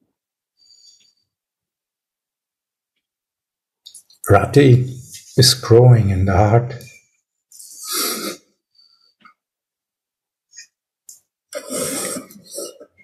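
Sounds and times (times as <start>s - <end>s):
breathy noises close to microphone: 11.6s - 13.0s.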